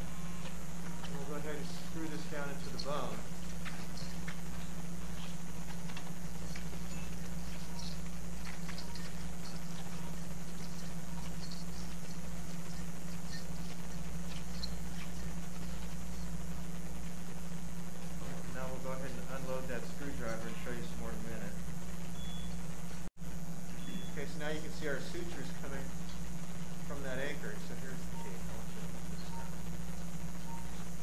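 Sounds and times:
low electrical hum: 0:00.0 - 0:31.0.

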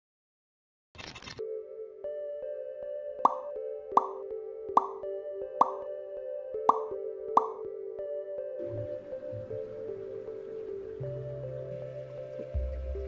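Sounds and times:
background music: 0:01.4 - 0:13.0
plop sound effects: 0:03.2 - 0:04.2, 0:04.8 - 0:05.0, 0:05.6 - 0:05.9, 0:06.7 - 0:07.6.

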